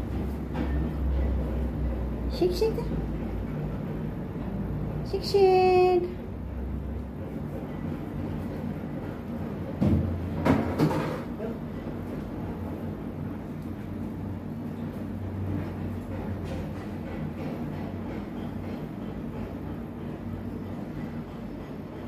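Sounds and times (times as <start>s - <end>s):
low machine hum: 0.0s - 22.0s.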